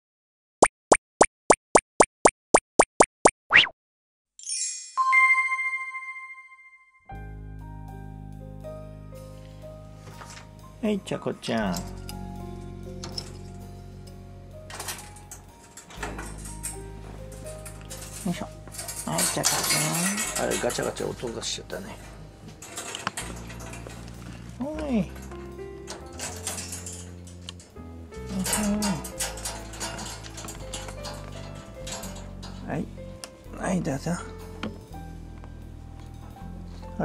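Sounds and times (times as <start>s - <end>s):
cartoon pops: 0.6s - 3.8s
metal wire pen rattling: 14.7s - 32.7s.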